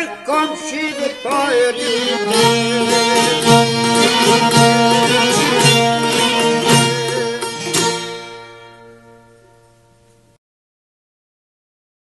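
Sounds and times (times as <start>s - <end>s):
plucked-string folk chord ringing: 0.0s - 10.4s.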